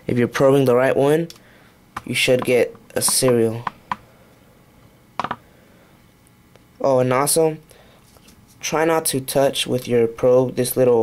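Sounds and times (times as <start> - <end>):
sharp clicks: 5.2 - 5.4.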